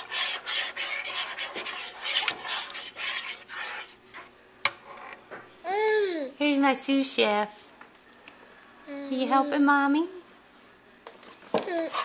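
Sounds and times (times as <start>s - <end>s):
spoon scraping a pot: 0.0s - 5.2s, 11.8s - 12.0s.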